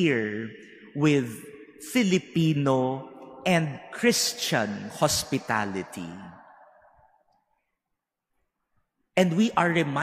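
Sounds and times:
man speaking with reverberation: 0.0s - 8.1s, 8.7s - 10.0s.

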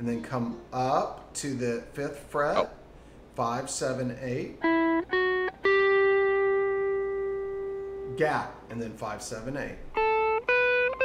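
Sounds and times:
clean electric guitar notes: 4.6s - 8.2s, 9.8s - 11.0s.

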